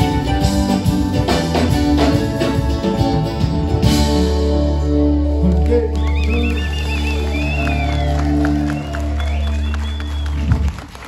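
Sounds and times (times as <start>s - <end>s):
steady bass: 0.0s - 11.0s.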